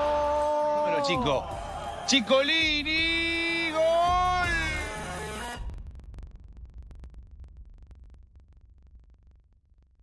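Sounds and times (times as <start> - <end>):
commentator shouting: 0.0 - 5.6.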